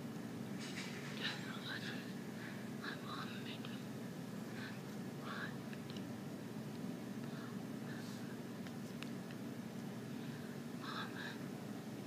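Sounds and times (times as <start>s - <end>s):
low room hum: 0.0s - 12.0s
woman whispering: 1.2s - 2.2s, 2.8s - 3.9s, 5.2s - 5.6s, 10.8s - 11.4s.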